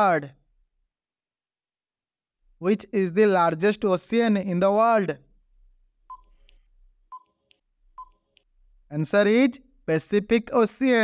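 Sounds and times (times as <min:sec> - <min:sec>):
short electronic beeps: 0:06.1 - 0:08.4.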